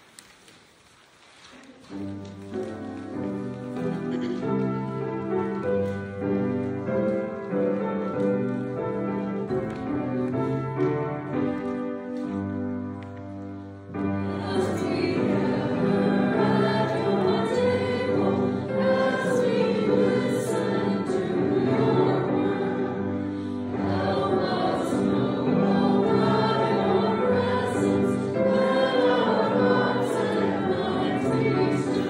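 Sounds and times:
group singing a hymn: 14.0s - 32.0s.

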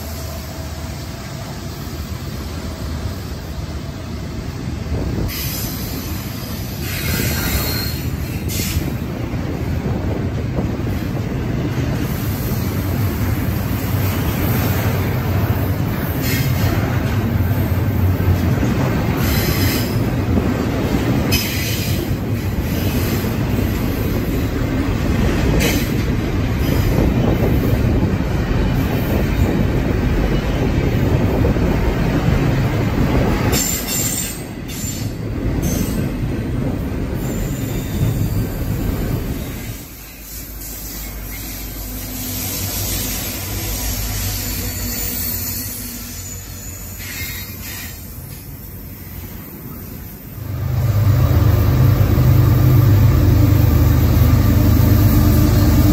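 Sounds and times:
train wheels rumbling on rail: 0.0s - 55.9s.

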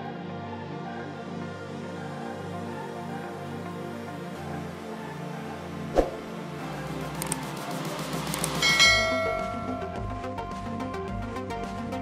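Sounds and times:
background music: 0.0s - 12.0s
mouse clicks: 7.2s - 7.5s, 8.3s - 8.6s
bright bell chime: 8.6s - 10.1s.

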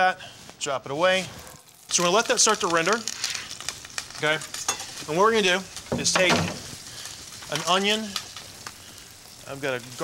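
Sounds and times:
crackles: 0.0s - 10.0s
bacon sizzling in oil: 0.9s - 10.0s.

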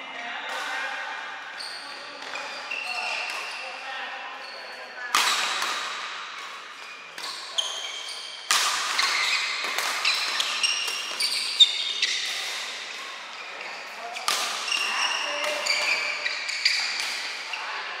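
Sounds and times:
shoes squeaking on court floor: 0.5s - 18.0s
racket hitting shuttlecock: 5.1s - 17.5s.

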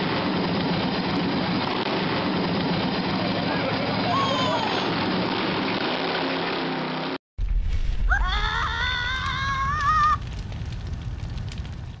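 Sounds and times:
low rumble: 7.4s - 12.0s.

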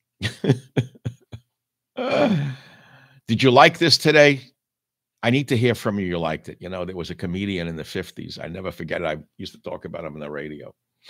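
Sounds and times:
man laughing: 0.2s - 2.6s.

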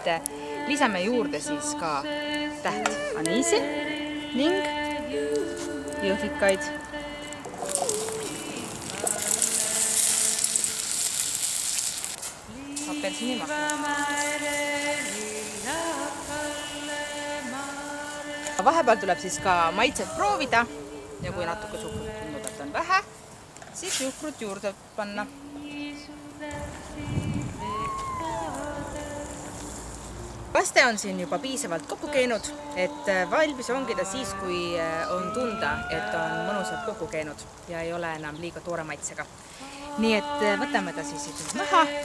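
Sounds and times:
woman folk singing: 0.0s - 11.0s, 12.4s - 29.9s, 30.6s - 42.0s
berries sizzling in hot sugar: 0.0s - 42.0s.

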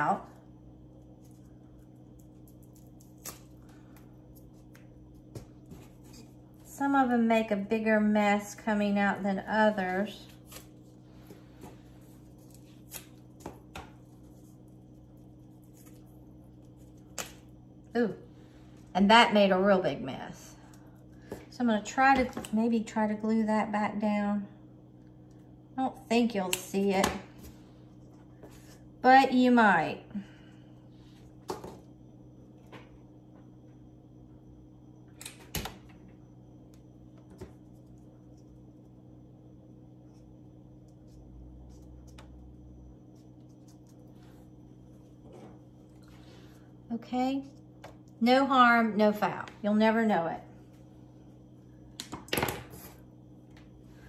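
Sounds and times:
faint steady low hum: 0.0s - 54.0s.

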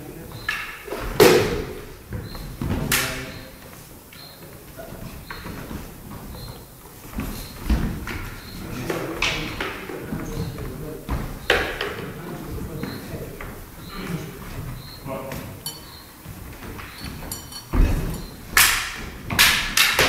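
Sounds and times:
shuffling footsteps: 0.0s - 19.4s
shoe squeaks on floor: 0.3s - 0.9s, 1.8s - 8.9s, 12.7s - 18.5s.

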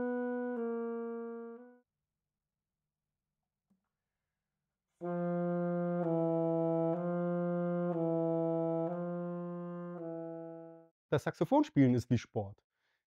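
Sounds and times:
alto saxophone slurring notes: 0.0s - 1.8s, 5.0s - 10.8s.

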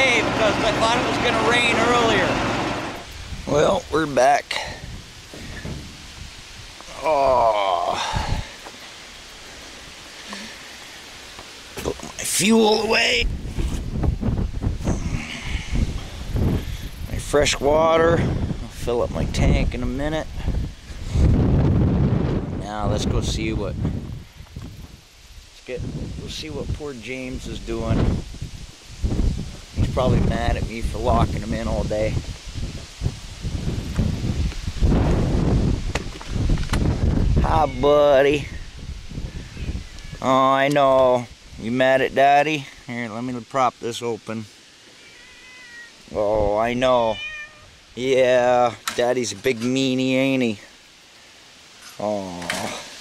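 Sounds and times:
wind buffeting microphone: 0.0s - 8.6s, 11.8s - 42.2s
outdoor hiss: 0.0s - 53.0s
microphone handling noise: 4.9s - 6.9s, 13.2s - 17.2s, 20.4s - 25.0s, 27.8s - 40.8s.

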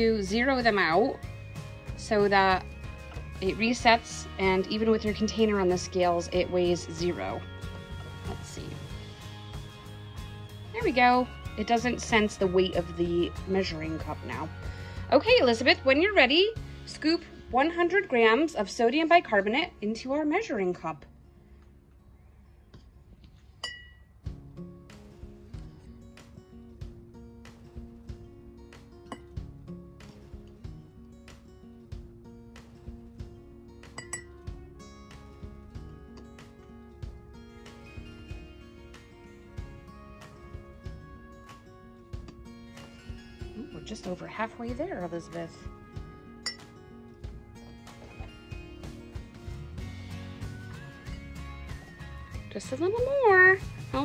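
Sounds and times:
soft background music: 0.0s - 54.0s
metal spoon clinking glass: 23.6s - 24.1s, 34.0s - 34.4s, 46.4s - 46.7s.

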